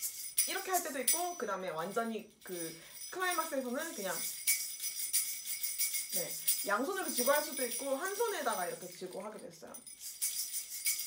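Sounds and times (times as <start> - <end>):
fruit shaker rattling: 0.0 - 11.0
jingle bells shaken: 0.0 - 11.0.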